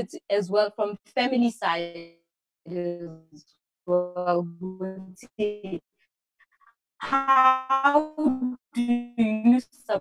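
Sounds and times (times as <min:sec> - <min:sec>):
woman speaking over video call: 0:00.0 - 0:02.1, 0:02.7 - 0:05.8, 0:07.0 - 0:10.0.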